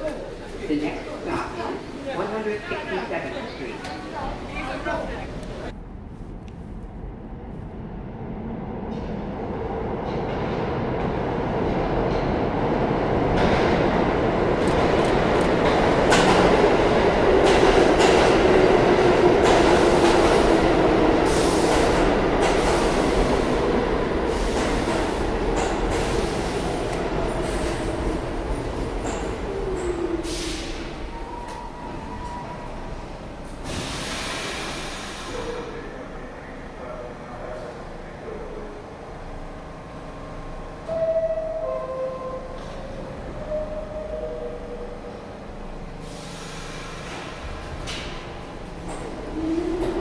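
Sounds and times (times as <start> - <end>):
subway train rumble: 0.0 - 50.0.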